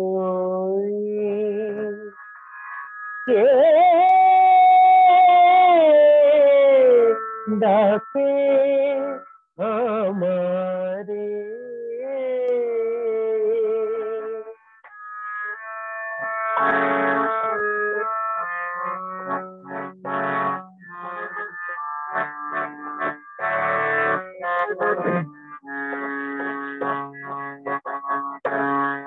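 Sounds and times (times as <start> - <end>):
person singing: 0.0 - 2.2, 3.3 - 14.6
keyboard sustained notes: 0.0 - 29.0.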